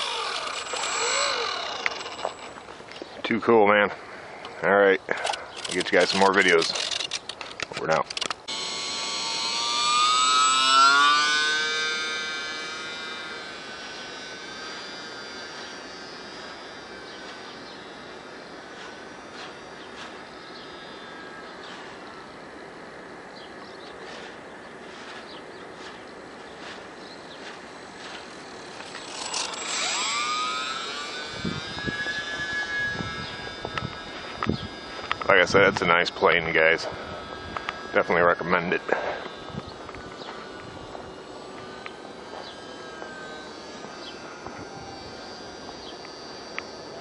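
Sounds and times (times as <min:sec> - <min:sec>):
model plane motor whining: 0:00.0 - 0:03.1, 0:04.6 - 0:47.0.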